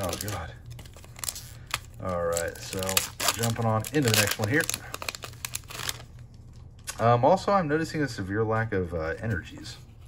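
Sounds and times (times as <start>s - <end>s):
cards rustling: 0.0s - 7.0s
foil wrapper crinkling: 0.0s - 7.0s.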